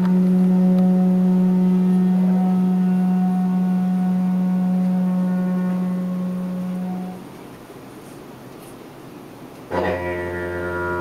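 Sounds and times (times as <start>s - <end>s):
didgeridoo drone: 0.0s - 7.3s, 9.7s - 11.0s.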